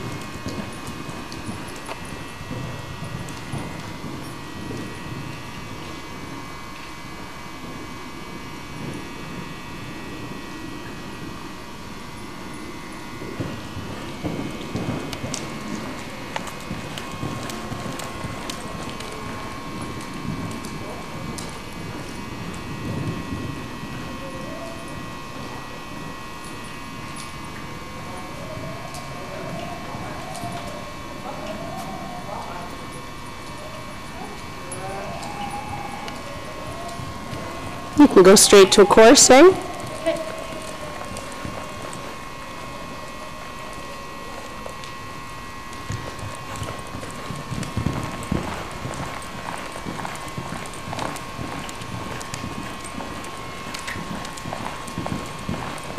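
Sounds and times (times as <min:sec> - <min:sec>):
faint hum: 0:00.0 - 0:55.9
muffled hoofbeats on soft footing: 0:45.9 - 0:55.9.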